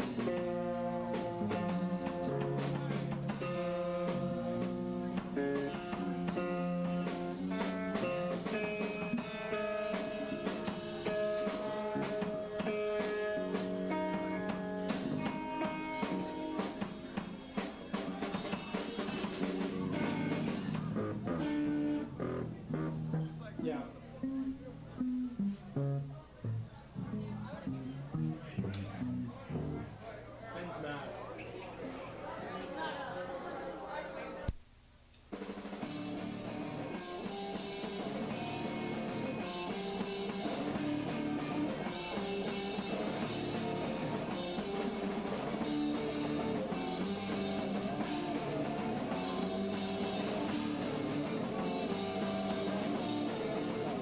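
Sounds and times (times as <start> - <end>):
live rock band playing: 0.0 - 30.2, 35.4 - 54.0
voices: 0.0 - 34.6, 36.1 - 54.0.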